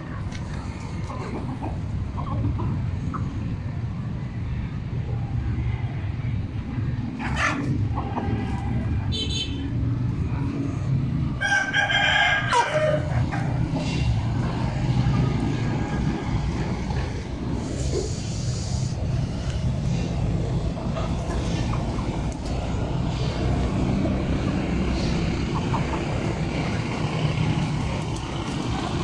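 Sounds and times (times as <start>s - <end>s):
chickens calling: 0.2s - 3.6s, 7.1s - 9.2s, 10.8s - 29.0s
rooster crowing: 11.4s - 13.1s.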